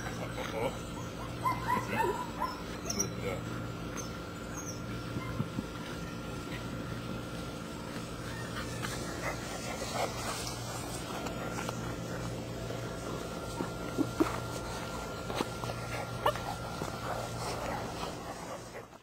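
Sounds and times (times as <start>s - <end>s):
puppies yipping and whining: 0.0s - 18.9s.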